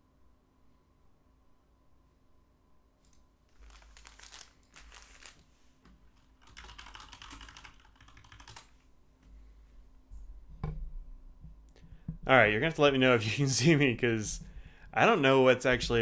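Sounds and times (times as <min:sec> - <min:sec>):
typing on computer keyboard: 0:06.4 - 0:08.7.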